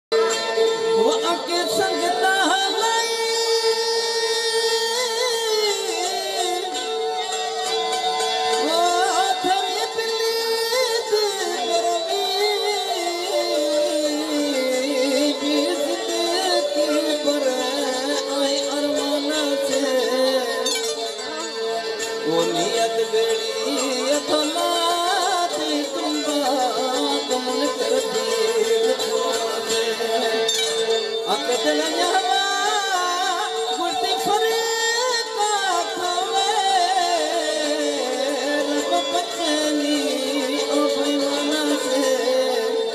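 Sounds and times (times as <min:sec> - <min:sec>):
ornamented folk melody: 0:00.1 - 0:42.9.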